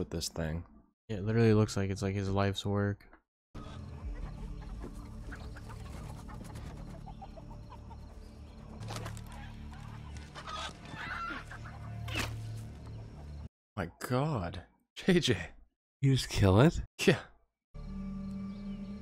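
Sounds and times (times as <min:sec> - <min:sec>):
chickens clucking: 0:03.6 - 0:13.5
rooster squawks: 0:09.3 - 0:12.4.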